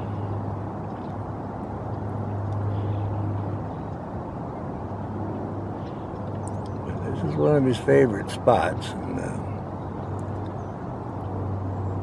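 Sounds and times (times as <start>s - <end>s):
distant traffic rumble: 0.0s - 12.0s.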